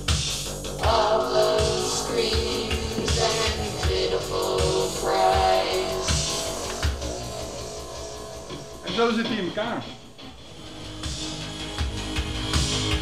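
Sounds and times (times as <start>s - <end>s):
drum machine beat: 0.0s - 10.3s, 10.9s - 13.0s
woman singing through vocoder: 0.8s - 7.6s.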